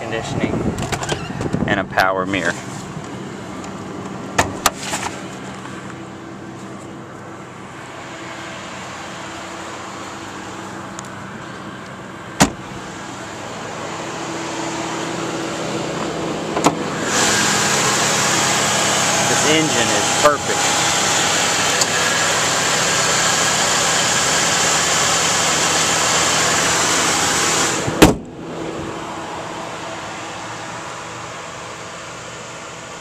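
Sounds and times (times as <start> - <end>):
car engine idling: 0.0 - 33.0.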